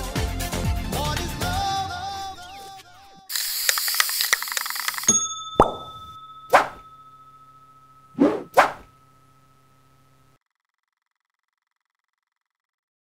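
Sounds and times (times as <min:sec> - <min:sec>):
faint steady tone: 0:04.7 - 0:10.4
upward-sweeping plopping pops: 0:05.6 - 0:06.8
short rush of noise: 0:08.2 - 0:08.8.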